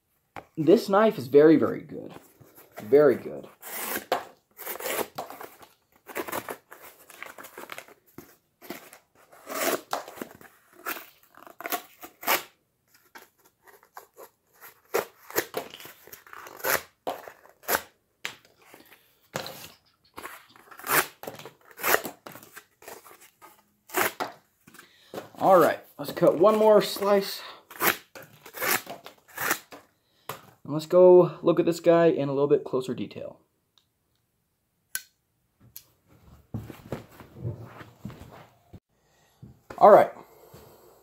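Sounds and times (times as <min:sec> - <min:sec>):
knife slicing cardboard: 0:03.6 - 0:06.9, 0:23.9 - 0:24.4, 0:27.7 - 0:29.8.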